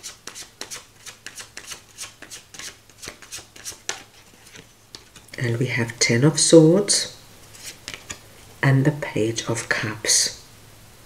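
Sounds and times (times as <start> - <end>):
cards being shuffled: 0.2 - 5.4, 7.5 - 8.2.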